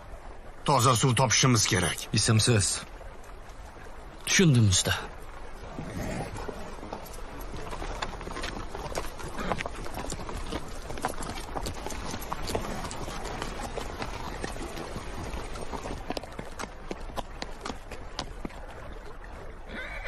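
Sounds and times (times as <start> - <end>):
horse hooves clip-clopping: 5.1 - 19.7.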